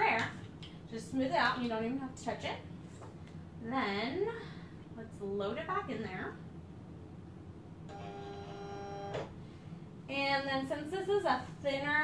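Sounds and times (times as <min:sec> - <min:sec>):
cutting machine motor whine: 0:07.9 - 0:09.3.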